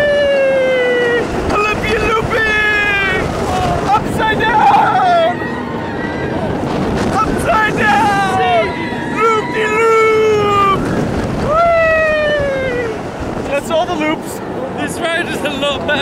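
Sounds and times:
riders screaming: 0.0s - 14.1s
wind rushing across microphone: 0.0s - 16.0s.

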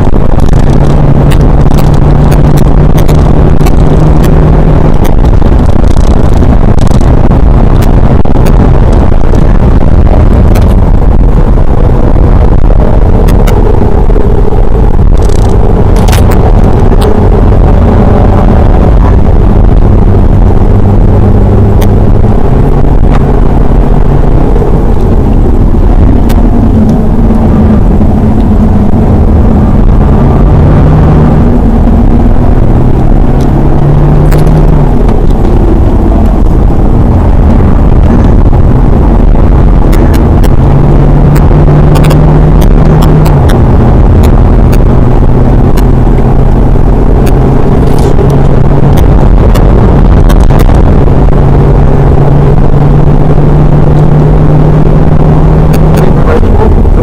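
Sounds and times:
car engine revving: 0.0s - 57.0s
road and tyre noise: 0.0s - 57.0s.

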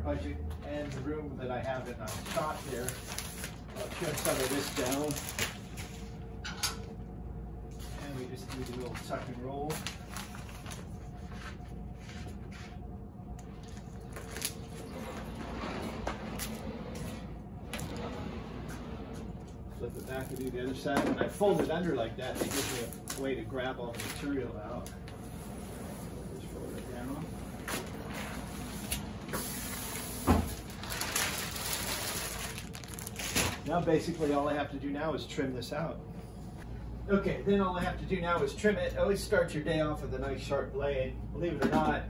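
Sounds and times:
plastic liner rustling: 2.0s - 5.5s, 30.4s - 33.8s
vinyl sheeting rustling: 2.0s - 6.0s, 13.6s - 34.6s.

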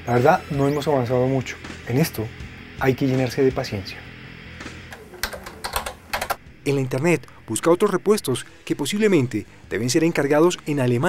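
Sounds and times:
faint background music: 0.0s - 11.0s
computer keyboard typing: 5.0s - 6.4s.

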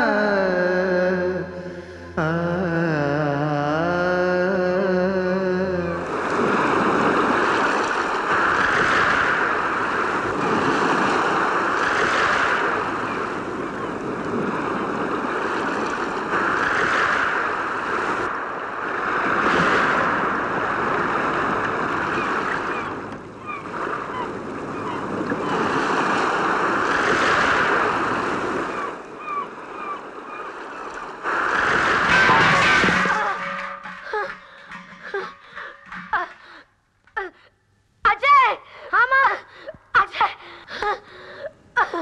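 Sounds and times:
sea surf crashing over rocks: 0.0s - 36.6s.

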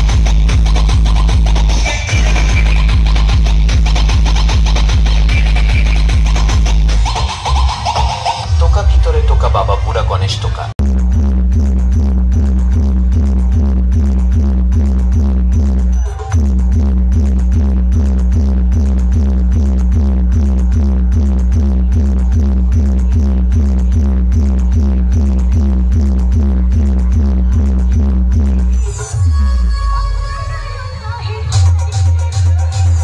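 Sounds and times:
electronic dance music: 0.0s - 33.0s.

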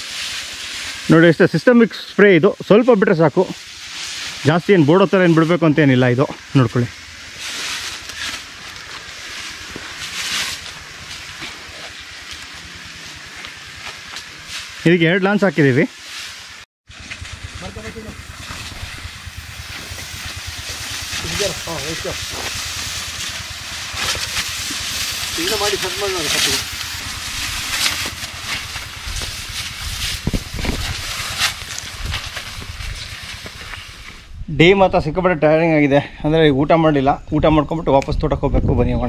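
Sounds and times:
spray lance hissing: 0.0s - 34.3s
fast low pulsing drone: 16.9s - 34.1s.

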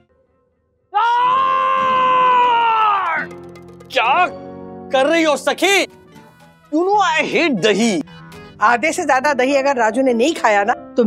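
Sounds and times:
man's high-pitched yell: 1.0s - 3.3s.

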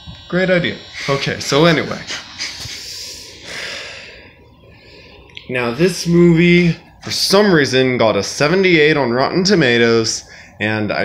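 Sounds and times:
person breathing out: 2.5s - 5.3s.

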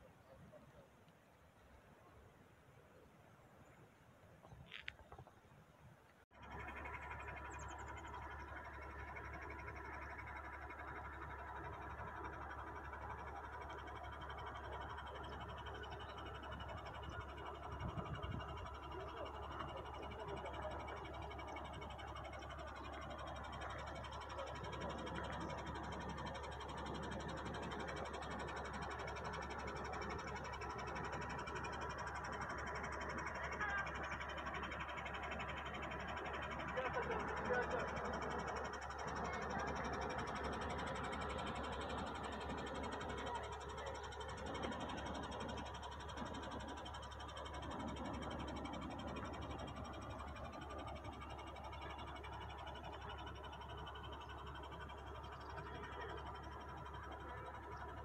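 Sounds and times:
indistinct talking: 6.4s - 58.0s.

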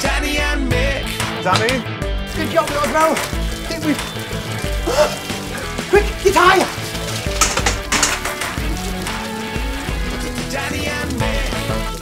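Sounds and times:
upbeat background music: 0.0s - 12.0s
water spraying from a hose: 2.2s - 12.0s.

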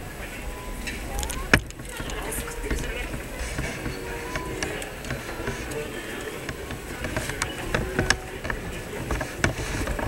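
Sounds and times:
indistinct voices: 0.0s - 10.0s
steady background hum: 0.0s - 10.0s.

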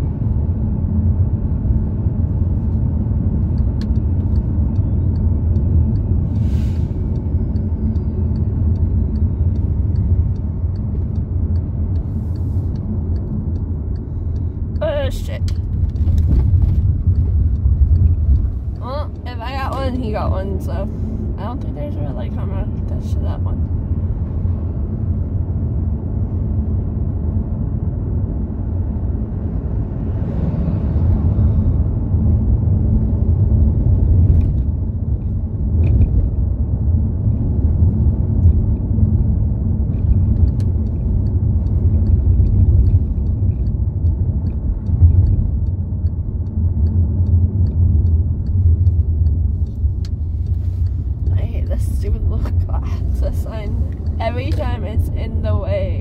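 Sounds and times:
road and engine noise in car: 0.0s - 56.0s.

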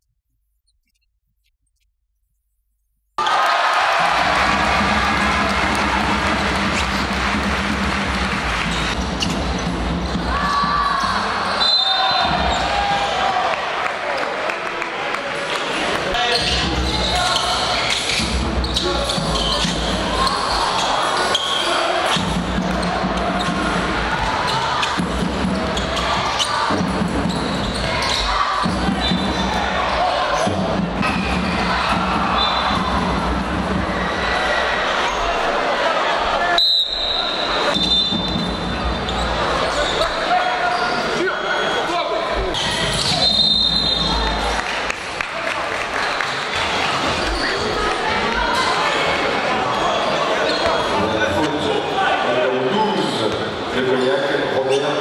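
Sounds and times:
crowd murmuring and calling: 3.2s - 55.0s
short high whistle: 36.6s - 38.2s, 43.1s - 44.1s.

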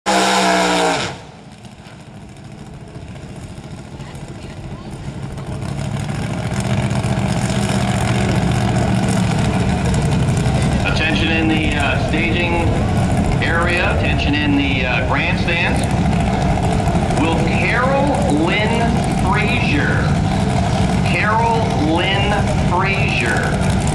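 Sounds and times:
drag car engine revving: 0.1s - 23.9s
public-address voice: 10.5s - 16.1s, 17.1s - 20.4s, 21.0s - 23.8s.

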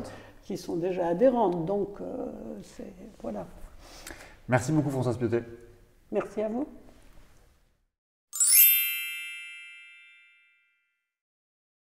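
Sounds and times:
bright electronic chime: 8.4s - 10.8s.

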